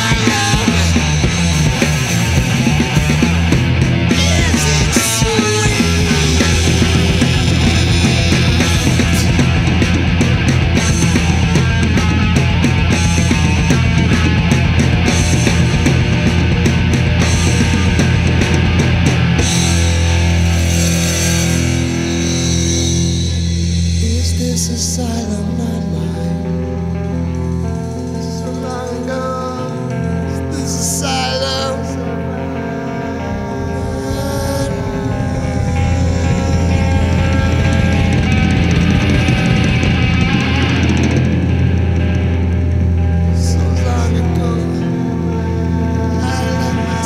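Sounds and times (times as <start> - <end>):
distorted electric guitar chord: 0.0 - 47.0
drums: 0.0 - 47.0.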